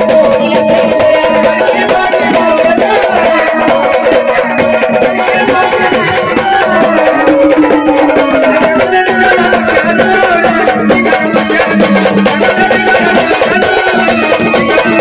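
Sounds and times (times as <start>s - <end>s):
fast hand percussion: 0.0s - 15.0s.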